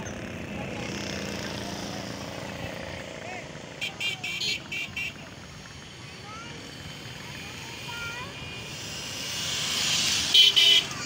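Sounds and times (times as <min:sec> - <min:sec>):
motorcycle engines: 0:00.0 - 0:11.0
vehicle horn beeps: 0:03.8 - 0:05.2, 0:10.3 - 0:11.0.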